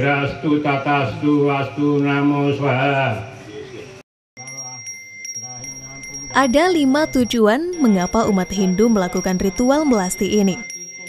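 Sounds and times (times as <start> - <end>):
small brass hand bell ringing: 4.4 - 11.0.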